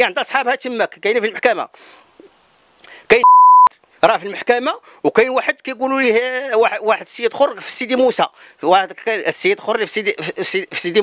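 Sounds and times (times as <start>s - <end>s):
person speaking: 3.1s - 4.5s
censor bleep: 3.2s - 3.7s.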